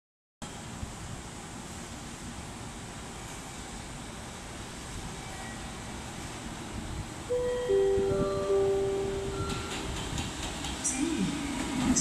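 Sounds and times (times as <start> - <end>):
railway station rumble and hiss: 0.4 - 12.0
electric locomotive approaching: 0.5 - 12.0.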